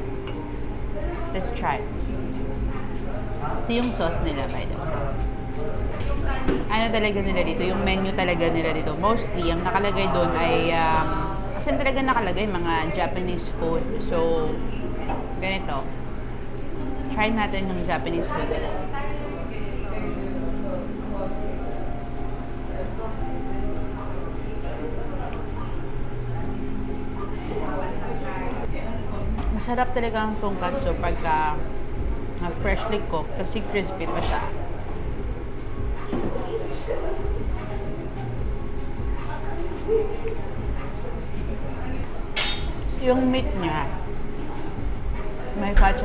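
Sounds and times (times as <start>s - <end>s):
background music with held notes: 0.0s - 46.0s
faint voices: 0.0s - 46.0s
steady low hum: 0.0s - 46.0s.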